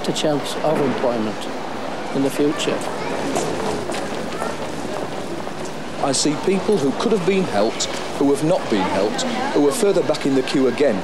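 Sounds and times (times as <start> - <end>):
indistinct voices of passers-by: 0.0 - 11.0
steady street noise: 0.0 - 11.0.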